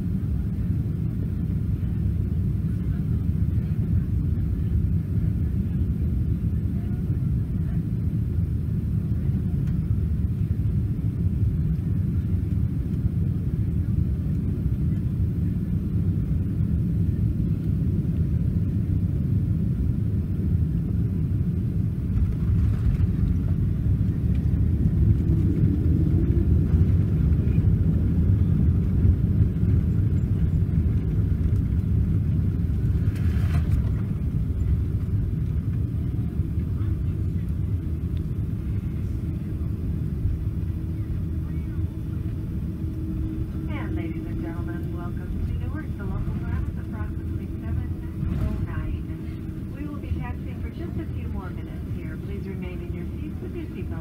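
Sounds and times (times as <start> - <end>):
aircraft cabin rumble: 0.0 - 54.0.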